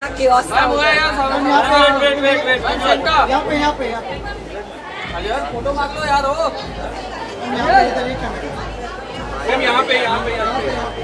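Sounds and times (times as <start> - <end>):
indistinct chatter in large room: 0.0 - 11.0.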